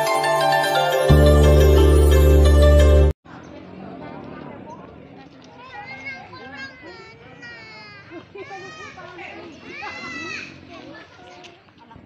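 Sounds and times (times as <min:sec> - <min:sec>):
children calling and chattering: 0:03.3 - 0:12.0.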